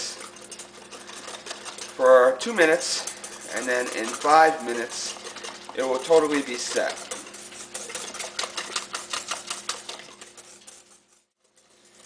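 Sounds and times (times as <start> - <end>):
whisk clicking against bowl: 0.0 - 12.0.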